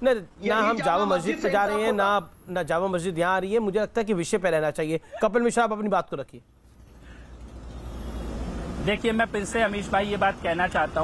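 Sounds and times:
man's voice: 0.0 - 2.2.

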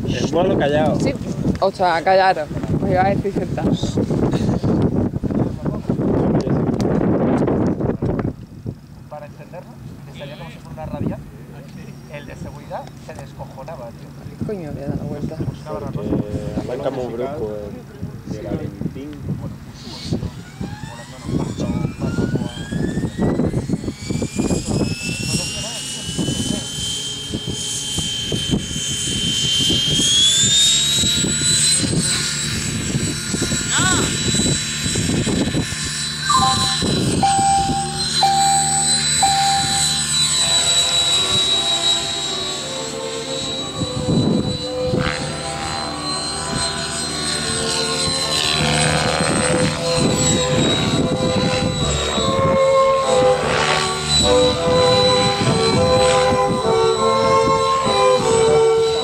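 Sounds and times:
model helicopter rotor whine: 0.0 - 59.0
short beeps: 36.2 - 41.5.

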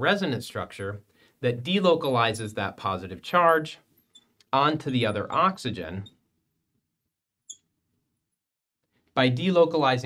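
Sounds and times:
marker squeaking on glass: 4.0 - 4.4.

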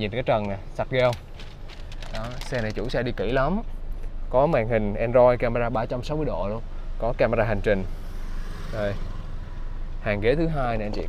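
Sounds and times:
car cabin hum: 0.0 - 8.0, 9.4 - 11.0.

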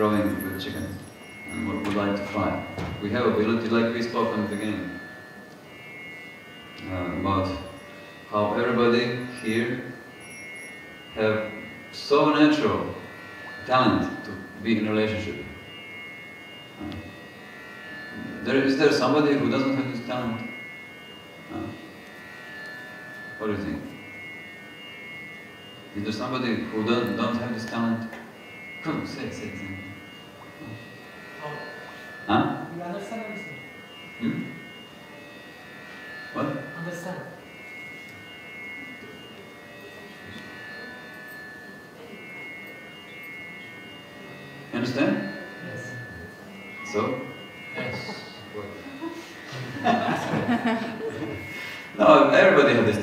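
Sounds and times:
harmonium drone: 0.0 - 53.0.

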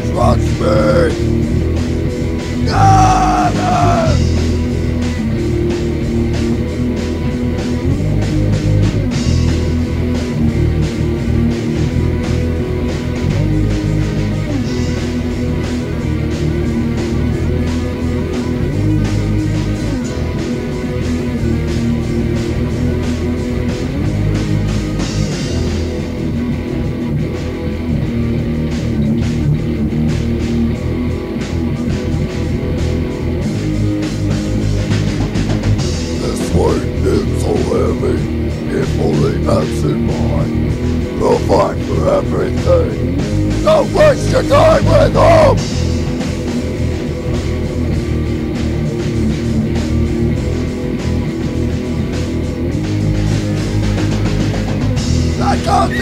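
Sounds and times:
bass guitar: 0.0 - 56.0
hardcore rock instrumental: 0.0 - 56.0.

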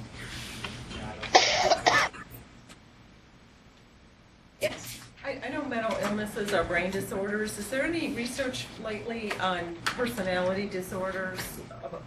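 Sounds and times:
person coughing: 1.3 - 2.3.

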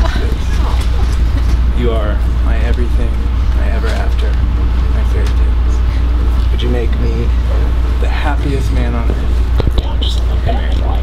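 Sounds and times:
indistinct voices: 0.0 - 11.0
loud steady low rumble: 0.0 - 11.0.

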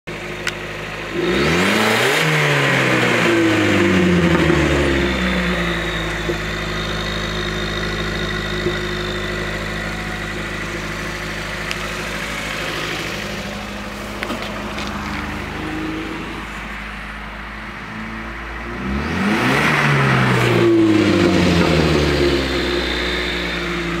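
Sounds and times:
car engine idling and revving: 0.1 - 24.0.

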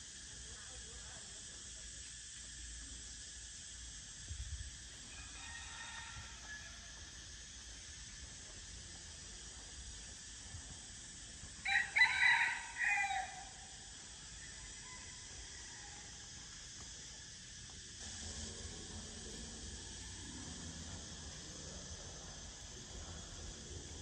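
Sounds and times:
outdoor background hiss: 0.0 - 24.0
rooster crowing: 5.1 - 7.1, 11.6 - 16.3.

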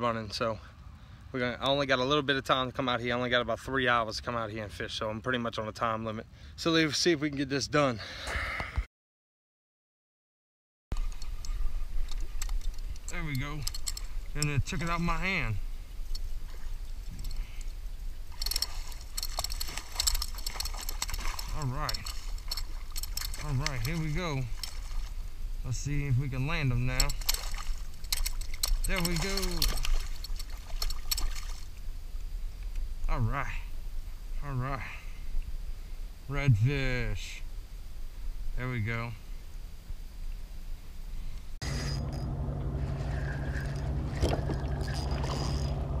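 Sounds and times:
wind rumbling on microphone: 11.0 - 34.5
fish thrashing in water: 16.0 - 25.2, 26.9 - 31.8, 42.8 - 45.9
sharp splashes: 18.6 - 25.3, 26.9 - 31.7, 42.7 - 45.8.

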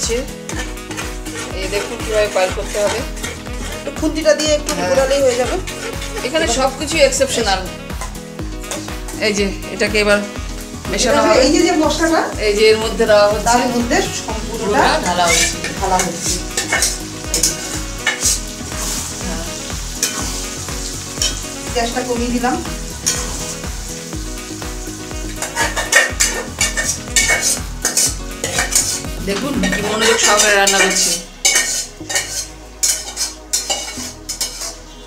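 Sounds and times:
chicken sizzling in a wok: 0.0 - 4.4, 5.0 - 10.9, 13.2 - 35.0
spatula scraping: 0.4 - 7.4, 8.0 - 9.3, 13.6 - 21.5, 22.9 - 23.7, 25.2 - 35.0.

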